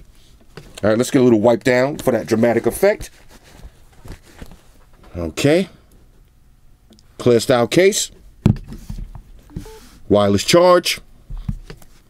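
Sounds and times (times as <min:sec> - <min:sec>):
short electronic beep: 0:09.5 - 0:09.9.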